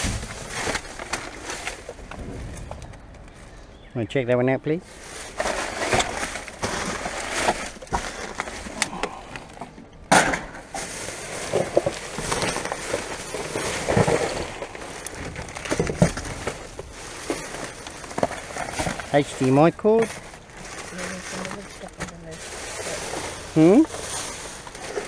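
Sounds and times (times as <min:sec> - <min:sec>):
plastic bags and paper rustling: 0:00.0 - 0:03.6, 0:04.7 - 0:09.8, 0:10.5 - 0:25.0
sharp crackles and knocks: 0:00.0 - 0:03.6, 0:04.8 - 0:25.0.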